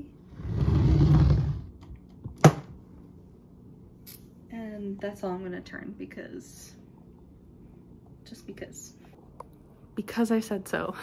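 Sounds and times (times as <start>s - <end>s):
trunk scraping on wooden floor: 0.4s - 1.7s.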